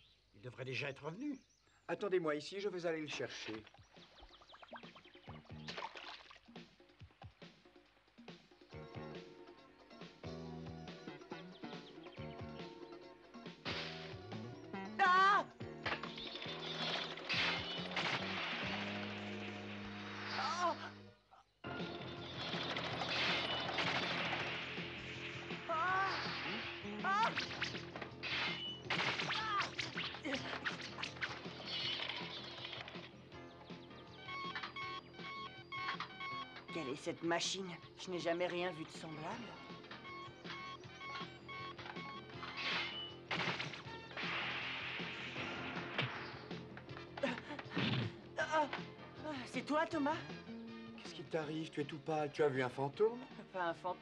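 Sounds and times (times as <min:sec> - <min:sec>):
dramatic cartoon music: 0:08.8 - 0:52.8.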